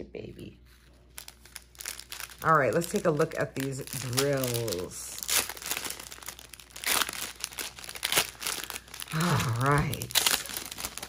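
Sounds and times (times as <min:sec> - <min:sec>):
plastic bags crinkling: 0:00.8 - 0:11.0.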